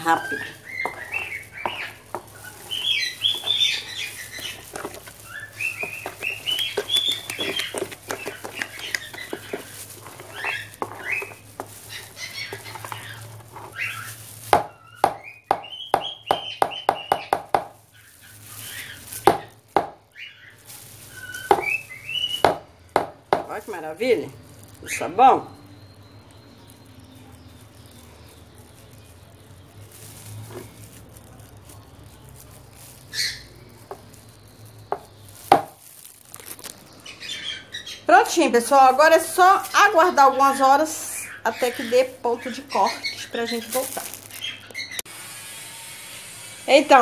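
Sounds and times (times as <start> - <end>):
utensil scraping in plastic basin: 0.0 - 15.0
birds chirping: 0.0 - 45.1.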